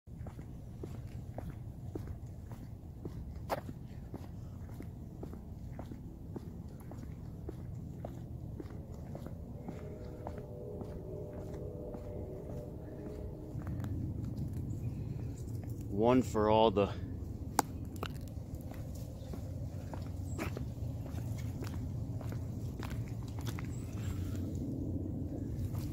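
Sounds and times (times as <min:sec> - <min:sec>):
footsteps walking outdoors: 0:00.1 - 0:25.9
steady low rumble: 0:00.1 - 0:25.9.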